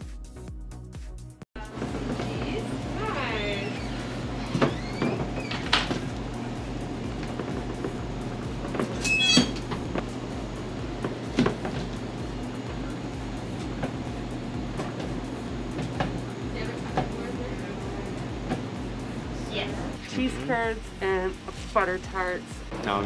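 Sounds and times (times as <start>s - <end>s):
high metallic squeal: 9.0s - 9.6s.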